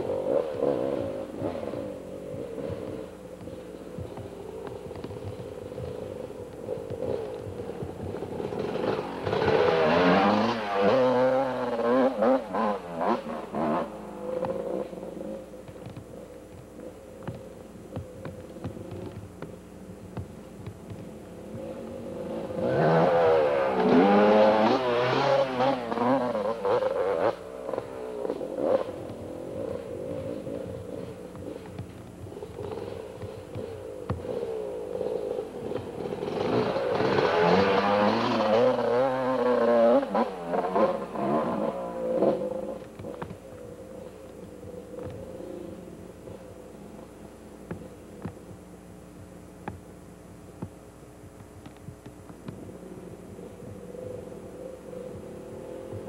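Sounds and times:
dirt bike engine revving: 0.0s - 3.9s, 4.8s - 15.5s, 21.5s - 47.0s.

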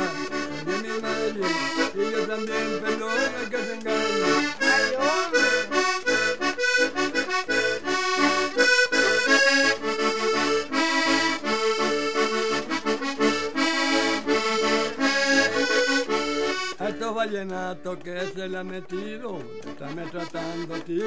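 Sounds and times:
button accordion playing: 0.0s - 21.0s.

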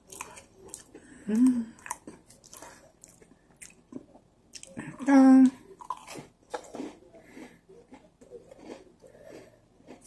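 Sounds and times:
cookie chewing and crunching: 0.0s - 10.0s.

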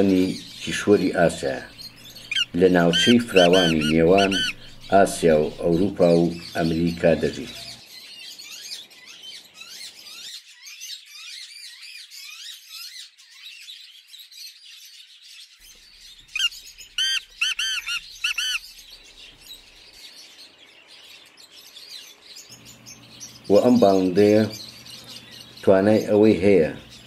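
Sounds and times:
francolin calling loud notes: 0.0s - 7.7s, 16.3s - 19.4s
small birds chirping: 0.0s - 27.0s.

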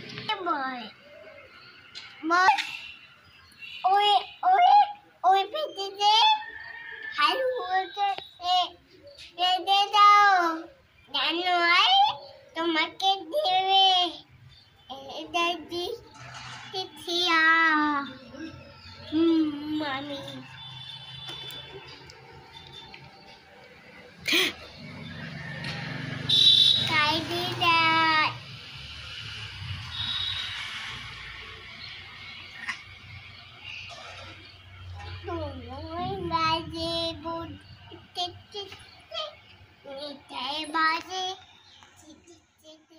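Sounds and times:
toddler singing wordless call: 3.8s - 6.4s, 7.2s - 16.1s, 16.8s - 20.7s, 26.8s - 28.5s, 35.1s - 42.9s.

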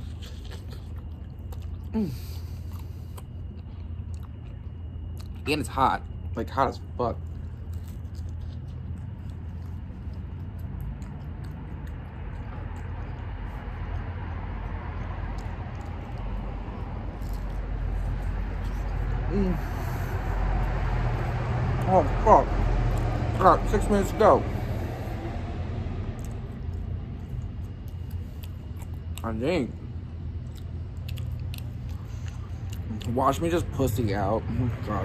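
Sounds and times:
motor vehicle rumbling: 6.1s - 35.0s
voiced sounds: 12.6s - 28.0s.

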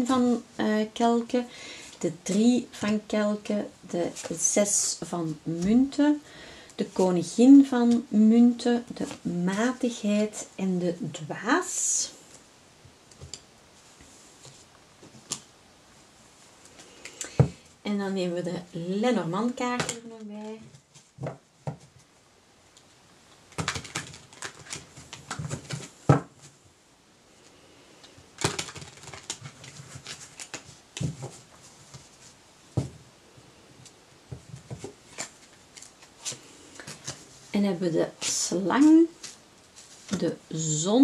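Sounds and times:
cards flicking and rustling: 23.5s - 26.0s, 28.4s - 32.1s.

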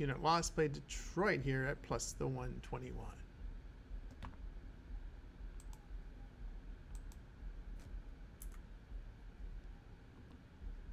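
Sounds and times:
low room rumble: 0.0s - 10.9s.

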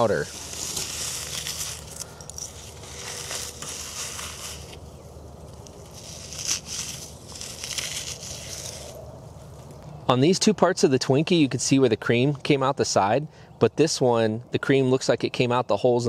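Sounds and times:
charcoal crumbling by hand: 0.0s - 4.9s, 5.5s - 9.0s.

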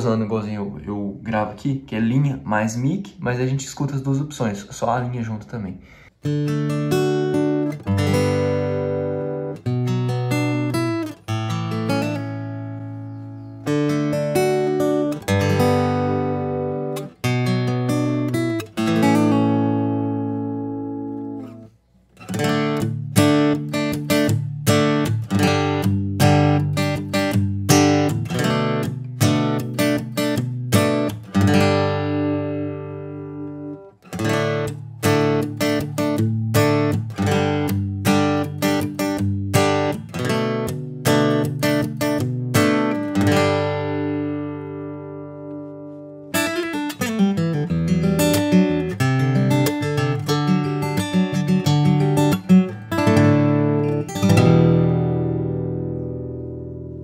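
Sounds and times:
acoustic guitar picking: 6.2s - 57.0s.

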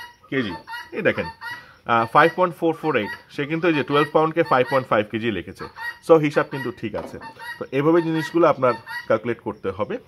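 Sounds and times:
man speaking: 0.3s - 10.0s.

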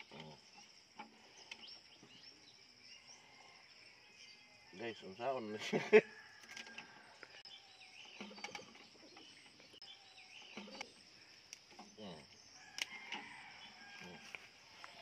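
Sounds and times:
faint bird chirps: 6.2s - 14.2s.

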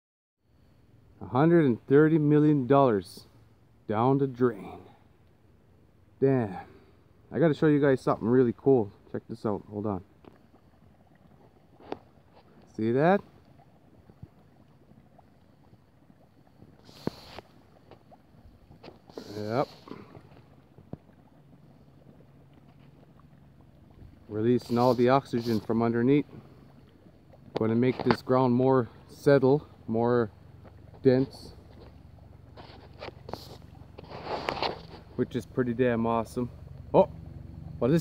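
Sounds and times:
water moving around kayak: 8.0s - 38.0s
gas bubbles popping in mud: 9.6s - 34.1s.

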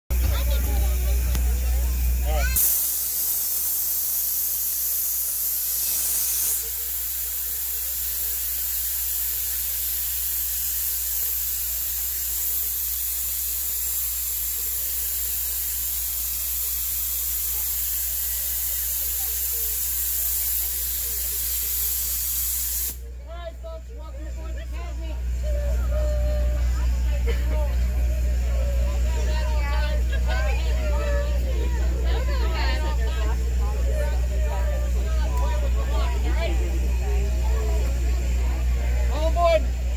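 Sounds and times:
steam hissing: 0.1s - 23.1s.

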